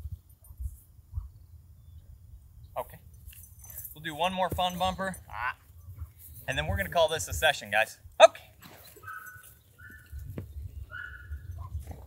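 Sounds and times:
wind rumble on microphone: 0.0s - 3.7s, 4.4s - 8.2s, 9.0s - 12.0s.

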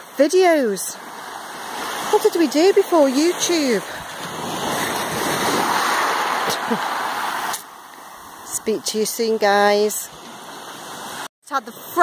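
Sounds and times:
waves washing up pebble beach: 0.4s - 8.4s.

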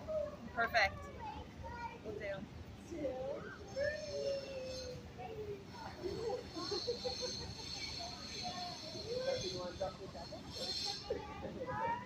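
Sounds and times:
background chatter of voices: 0.0s - 12.0s
steady high-pitched buzz: 5.7s - 11.9s.

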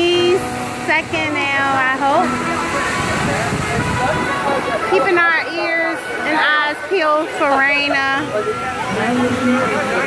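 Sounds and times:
water pouring and splashing: 0.0s - 10.0s.

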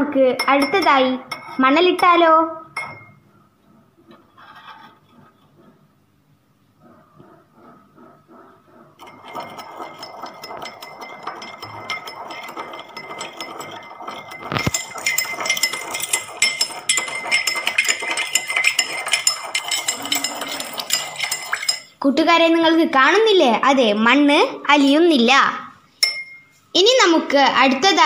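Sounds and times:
spoon clinking against glass: 0.4s - 1.6s, 2.8s - 3.2s, 9.0s - 22.0s, 26.0s - 26.5s.

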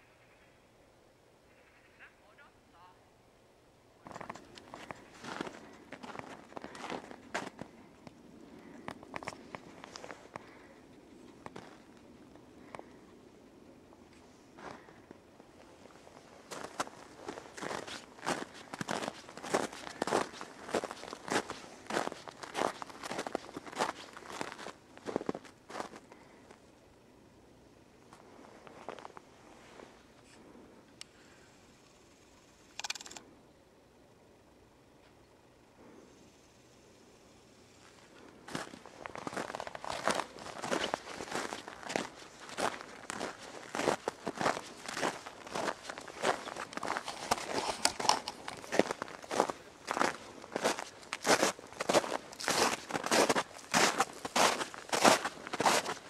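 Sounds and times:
footsteps crunching in snow: 4.0s - 7.8s, 8.6s - 10.7s, 15.5s - 26.0s, 37.8s - 56.0s
sharp clicks: 32.7s - 33.3s.

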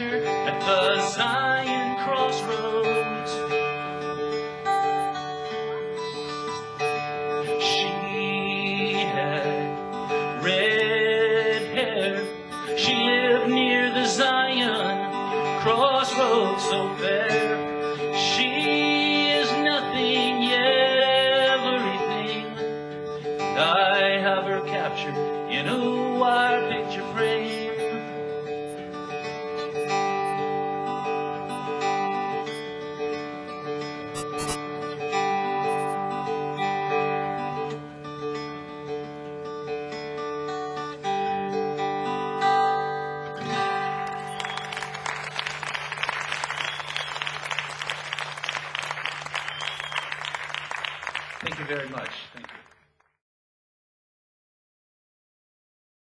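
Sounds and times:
person singing: 0.0s - 3.6s, 7.5s - 22.7s, 23.4s - 28.4s, 43.4s - 44.0s
acoustic guitar strummed chords: 0.0s - 50.4s
audience applause: 43.5s - 52.8s.

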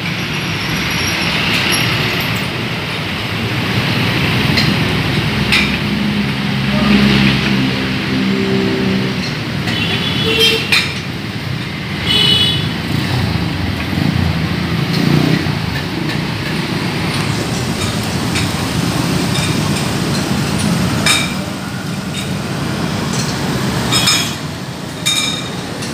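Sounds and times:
passing cars and motorcycles: 0.0s - 25.9s.

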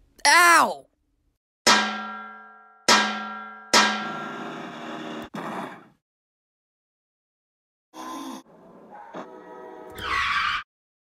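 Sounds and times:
metal clangs ringing: 1.7s - 4.2s.

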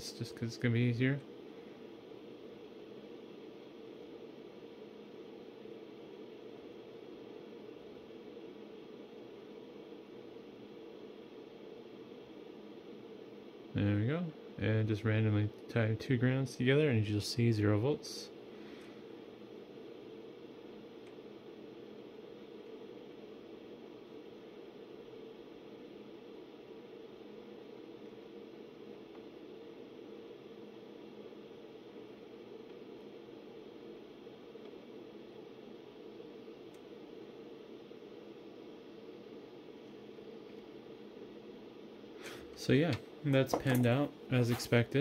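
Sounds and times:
server cooling fans whirring: 0.0s - 45.0s.

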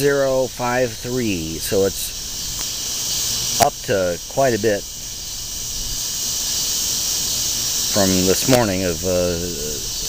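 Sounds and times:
cicadas buzzing: 0.0s - 10.0s.

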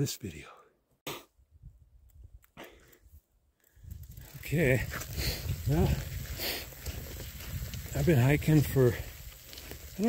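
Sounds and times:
bicycle rolling on wet pavement: 3.8s - 10.0s.

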